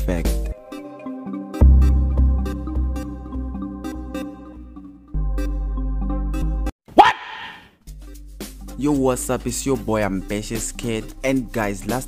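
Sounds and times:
loud shouted vocal: 6.9 - 7.7.

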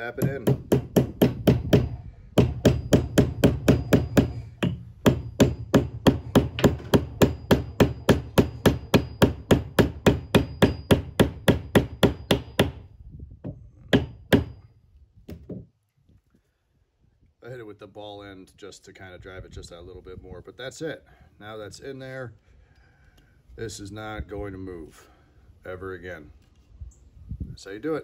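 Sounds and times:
hammer tapping steel wedge: 0.0 - 12.8.

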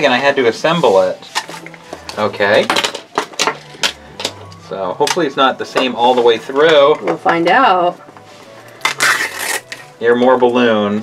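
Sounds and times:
paper seal rustling: 8.8 - 10.0.

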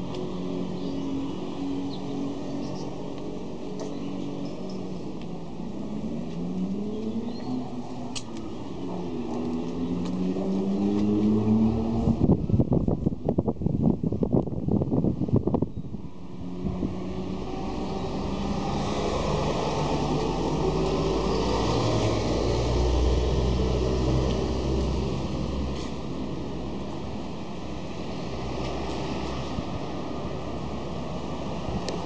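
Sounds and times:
vehicle engines in traffic: 0.0 - 32.0.

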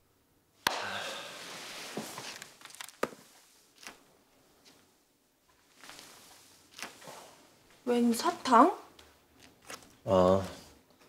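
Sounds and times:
clothing and sofa rustling: 1.1 - 10.7.

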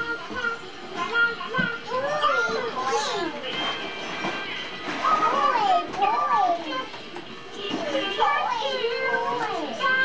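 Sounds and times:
young child sing-song voice: 0.0 - 3.6, 4.9 - 10.0.

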